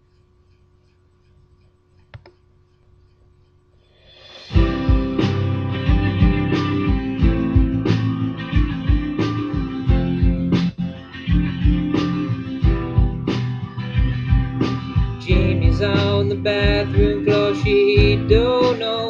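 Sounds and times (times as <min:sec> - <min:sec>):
guitar strumming chords: 0:04.2 - 0:19.0
man singing: 0:15.2 - 0:19.0.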